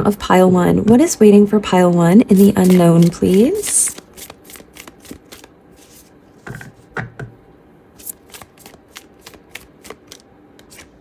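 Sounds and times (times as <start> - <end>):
cards shuffling: 2.4 - 6.1, 8.0 - 11.0.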